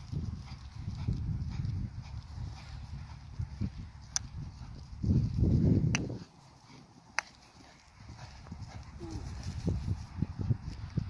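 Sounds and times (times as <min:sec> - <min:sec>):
hooves cantering on grass: 0:00.0 - 0:11.0.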